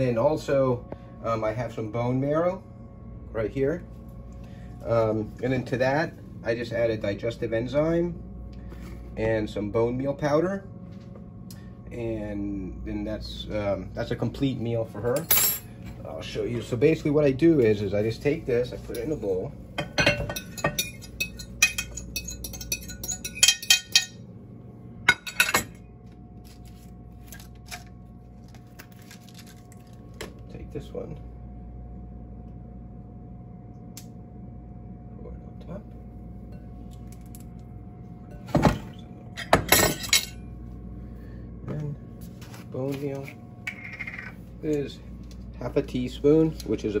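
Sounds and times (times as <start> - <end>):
faint steady hum: 0.0 - 47.0
glass bowl and dishes clinking: 19.8 - 24.2, 38.3 - 40.4.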